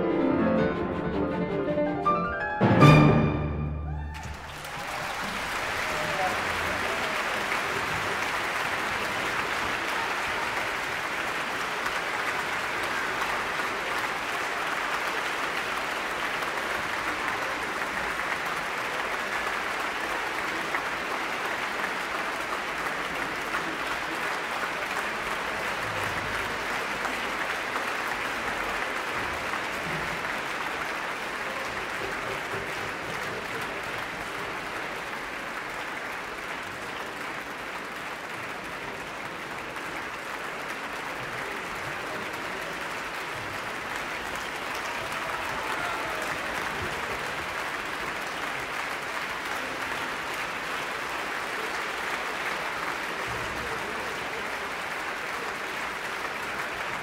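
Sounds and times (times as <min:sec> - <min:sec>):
audience applauding: 0:03.9 - 0:57.0.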